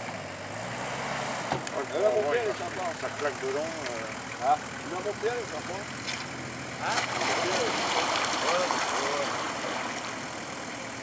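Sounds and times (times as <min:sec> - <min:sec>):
off-road vehicle engine running: 0:00.0 - 0:11.0.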